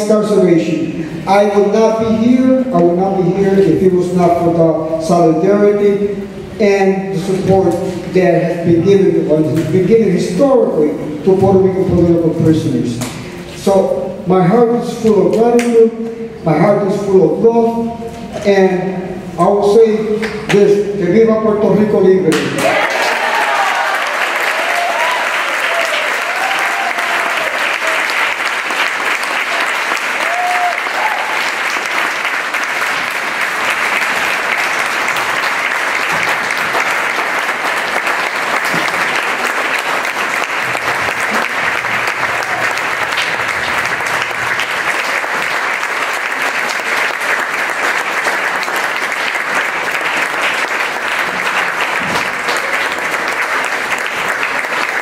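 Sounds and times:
audience applauding: 22.6 - 55.0.

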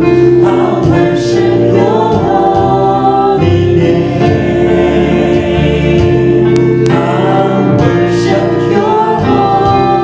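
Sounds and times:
choir singing worship song: 0.0 - 10.0
keyboard accompaniment: 0.0 - 10.0.

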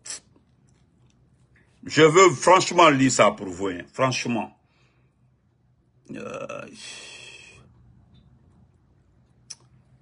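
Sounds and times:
man's drawn-out wordless vocal: 6.1 - 7.6.

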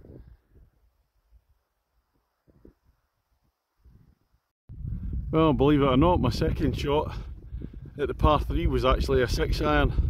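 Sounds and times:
wind rumbling on microphone: 0.0 - 1.5, 3.8 - 10.0.

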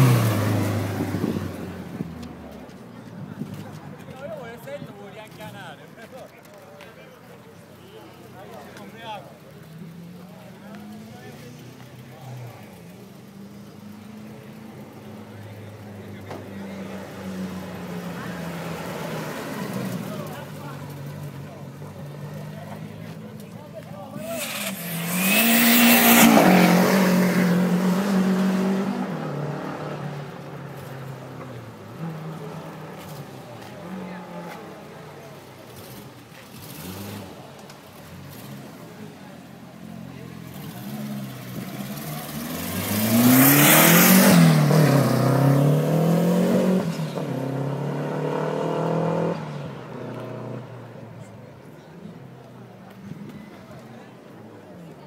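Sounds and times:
car engines revving past: 0.0 - 5.8, 7.1 - 55.0
voices: 0.0 - 48.0, 48.8 - 55.0.

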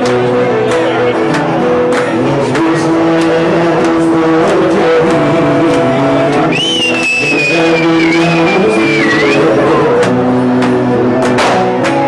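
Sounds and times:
plucked string folk music: 0.0 - 7.2, 8.0 - 12.0.

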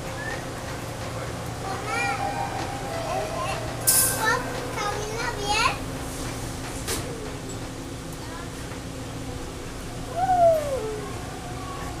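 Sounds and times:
subway car hum: 0.0 - 12.0
child chattering and squealing: 10.1 - 11.2.

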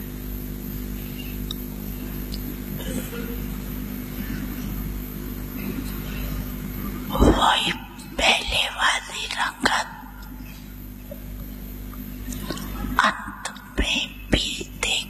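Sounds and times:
electrical hum: 0.0 - 15.0
elderly woman speaking into microphone: 7.1 - 9.9.

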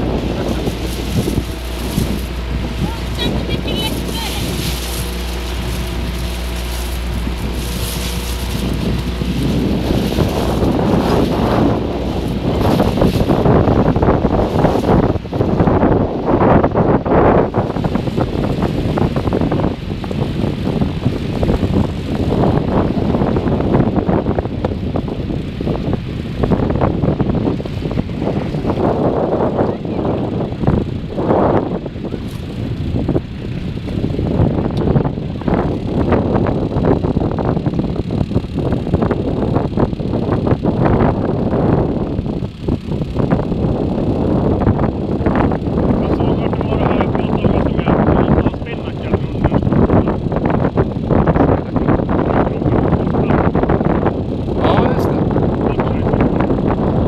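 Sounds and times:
boat engine humming: 0.0 - 57.0
wind buffeting microphone: 0.0 - 57.0.

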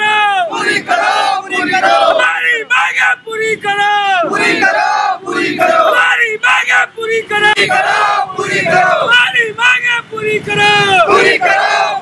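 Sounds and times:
crowd of men chanting: 0.0 - 9.4, 10.6 - 12.0.

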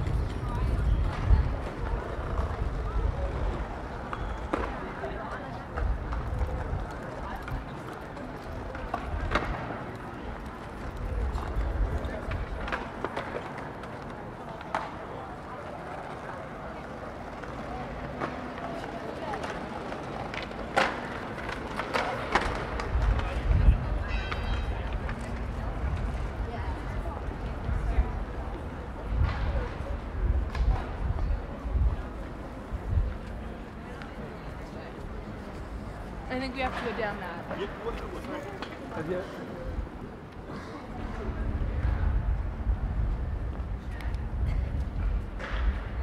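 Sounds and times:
wind buffeting microphone: 0.0 - 4.2, 22.7 - 33.8, 41.0 - 46.0.

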